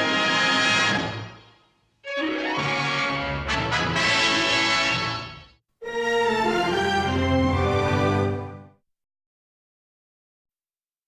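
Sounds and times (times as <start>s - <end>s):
sitcom theme music: 0.0s - 8.8s.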